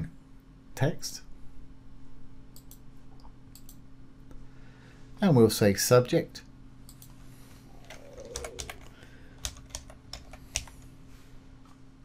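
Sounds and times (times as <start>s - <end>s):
faint low hum: 0.0s - 12.0s
typing on keyboard: 7.9s - 10.8s.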